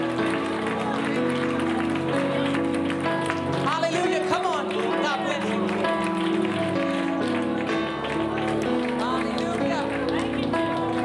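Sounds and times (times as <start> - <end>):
sustained keyboard chords: 0.0 - 11.0.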